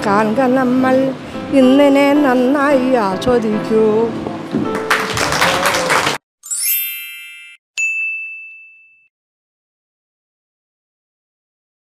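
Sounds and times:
bright ding: 6.4s - 9.1s
sparkling chime: 6.4s - 9.1s.

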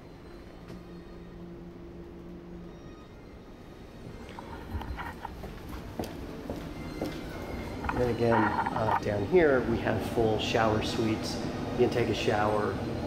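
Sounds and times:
low steady hum: 0.0s - 13.0s
footsteps on hard floor: 4.4s - 8.7s.

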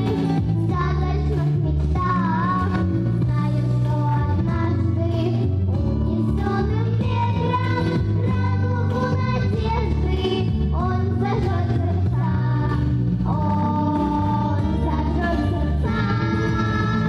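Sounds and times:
girls singing into microphones: 0.0s - 17.0s
loud instrumental accompaniment: 0.0s - 17.0s.

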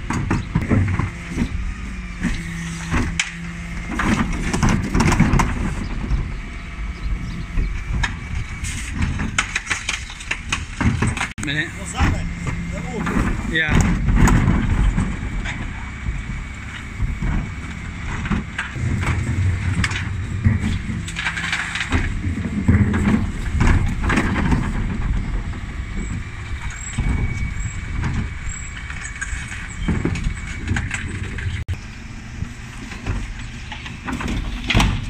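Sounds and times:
bins and rubbish clattering: 0.0s - 6.5s, 7.2s - 31.7s, 32.5s - 35.0s
bin lift tipping bins: 0.0s - 35.0s
lorry engine running: 0.0s - 35.0s.

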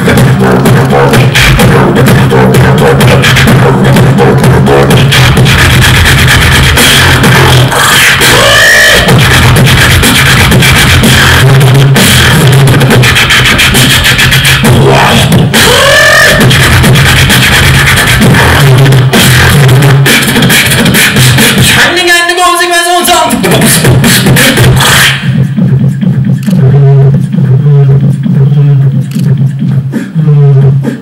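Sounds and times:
beatboxing into a microphone: 0.0s - 31.0s.

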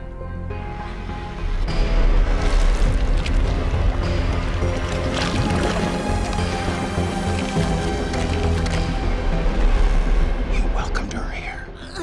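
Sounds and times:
dark dramatic score: 0.0s - 12.0s.

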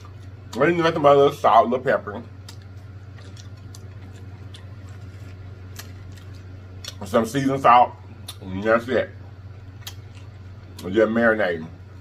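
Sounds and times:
low electrical hum: 0.0s - 12.0s
chewing: 2.4s - 7.1s, 9.8s - 10.8s.

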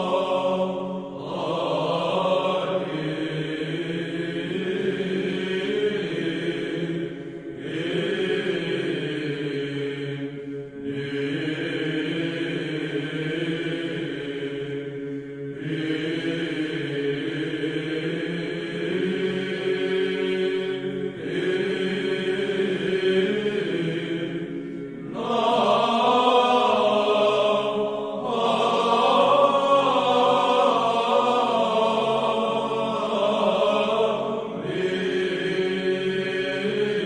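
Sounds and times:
held vocal drone: 0.0s - 37.0s
male choir chanting: 0.0s - 37.0s.

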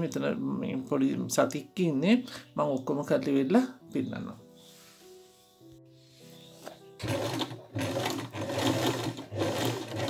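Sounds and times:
sewing machine running: 7.0s - 10.0s.

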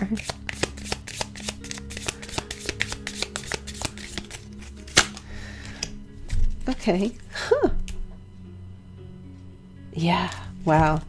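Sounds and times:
cards being shuffled: 0.0s - 6.9s
faint background music: 0.0s - 11.0s
card snap: 0.2s - 6.4s.

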